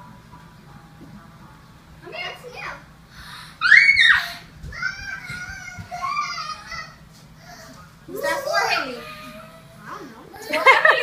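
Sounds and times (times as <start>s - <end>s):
girl squealing excitedly: 3.6s - 4.4s.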